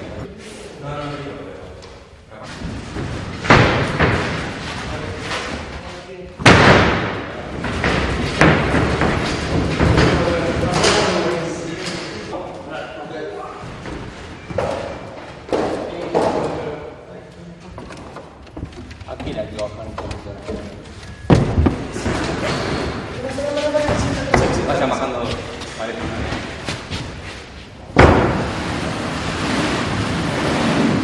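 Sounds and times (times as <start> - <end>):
heavy wooden thuds and knocks: 2.6 - 4.8, 6.4 - 11.3, 17.7 - 23.1, 23.8 - 27.2, 27.9 - 29.2
men's voices: 9.4 - 13.9, 19.0 - 26.7.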